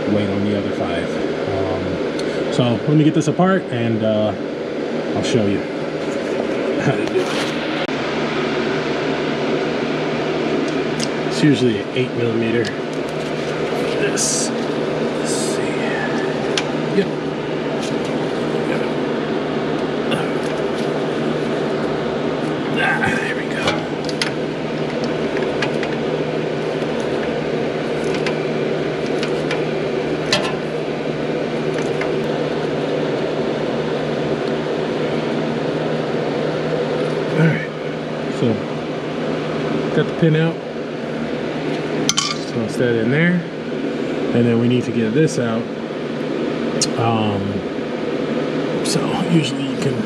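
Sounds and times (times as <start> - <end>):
electric fan drone: 0.0 - 50.0.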